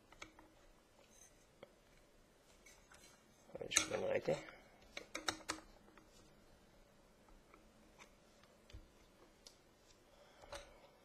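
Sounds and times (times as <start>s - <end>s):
person speaking: 3.4s - 4.6s.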